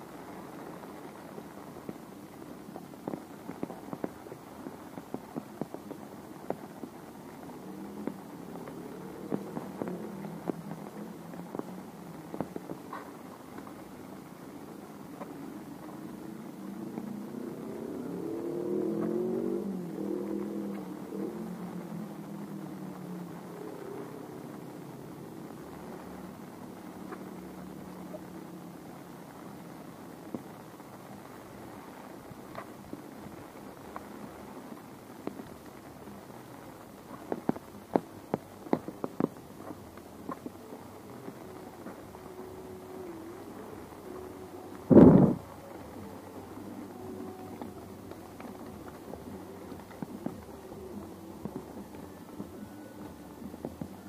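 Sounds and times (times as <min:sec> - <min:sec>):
vehicle engine passing by: 0:16.6 - 0:24.0.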